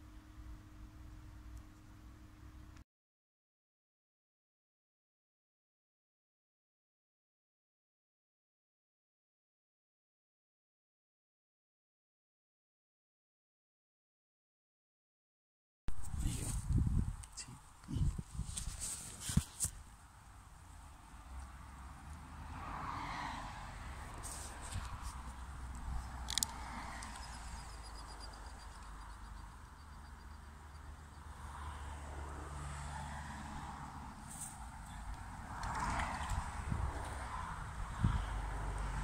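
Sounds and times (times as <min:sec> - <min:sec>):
distant road traffic rumble: 0:15.9 - 0:39.0.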